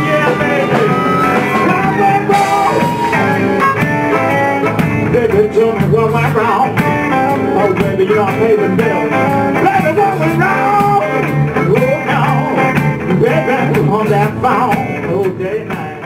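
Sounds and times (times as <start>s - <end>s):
steady accompanying beat: 0.0s - 14.0s
harmonicas playing blues: 0.0s - 16.0s.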